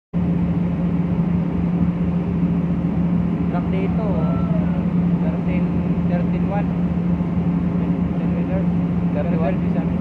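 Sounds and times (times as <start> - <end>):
ferry machinery droning: 0.2 - 10.0.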